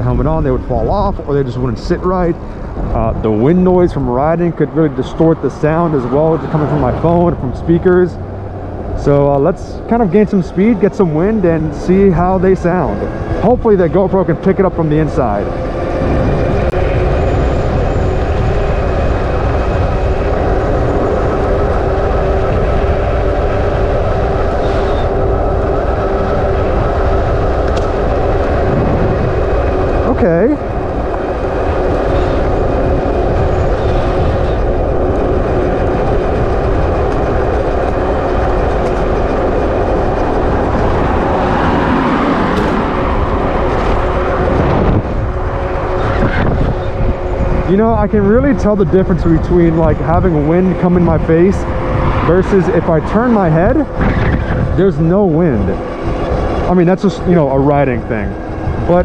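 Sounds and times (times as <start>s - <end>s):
steady motor whine: 0.0s - 59.0s
wind buffeting microphone: 0.0s - 59.0s.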